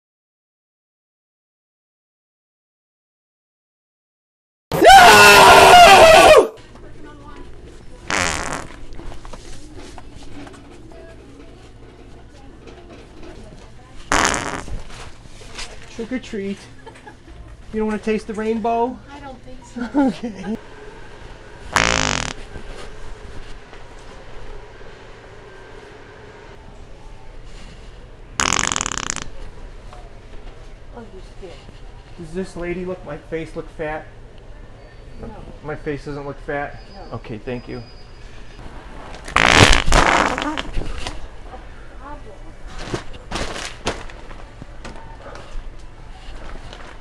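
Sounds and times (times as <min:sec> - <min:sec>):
faint store background: 0:06.5 - 0:47.0
loud fart: 0:08.1 - 0:08.8, 0:14.1 - 0:14.8, 0:21.7 - 0:22.5, 0:28.4 - 0:29.4, 0:39.2 - 0:41.0.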